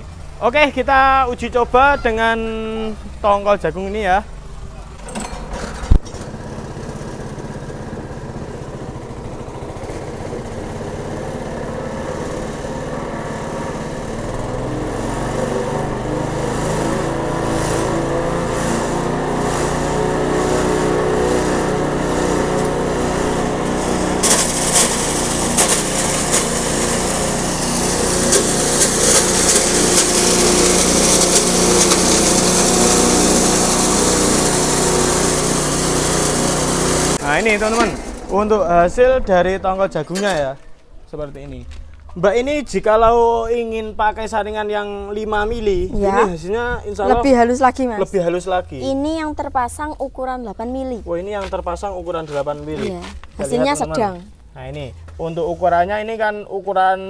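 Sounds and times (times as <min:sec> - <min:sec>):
small engine running: 0:04.3 - 0:39.5
mill grinding corn cobs: 0:04.8 - 0:39.5.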